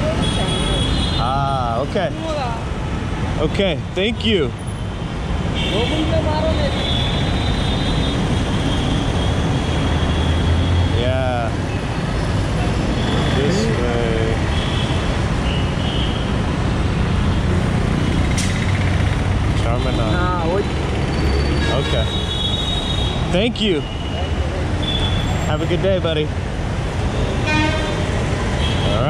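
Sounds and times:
street traffic rumble: 0:00.0 - 0:29.0
voices: 0:10.9 - 0:11.6, 0:12.5 - 0:14.5, 0:19.4 - 0:20.8, 0:21.6 - 0:22.2, 0:23.3 - 0:26.3.

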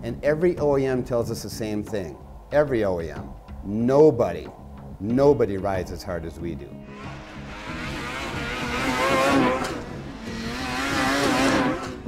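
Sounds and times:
snowmobiles passing by: 0:06.9 - 0:12.0.

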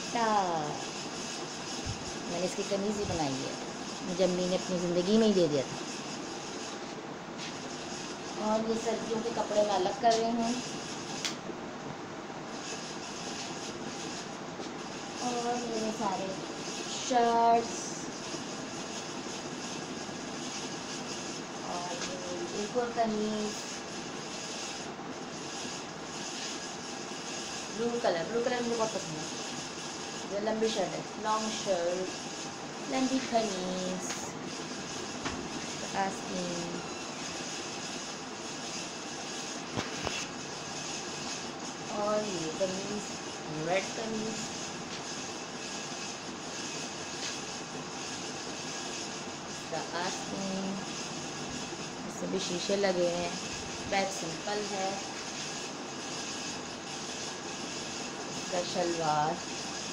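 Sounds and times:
steady rushing noise: 0:12.3 - 0:59.9.

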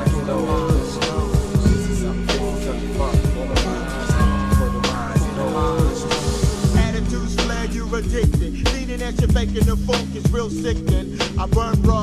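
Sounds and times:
rapping over a beat: 0:00.0 - 0:12.0
steady bass line: 0:00.0 - 0:12.0.

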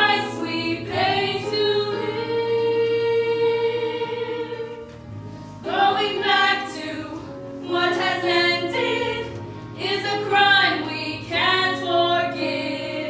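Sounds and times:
small chorus singing: 0:00.0 - 0:05.0, 0:05.6 - 0:13.0.

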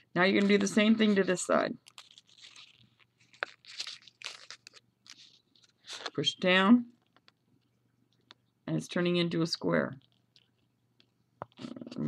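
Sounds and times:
paper crinkling: 0:00.4 - 0:06.2.

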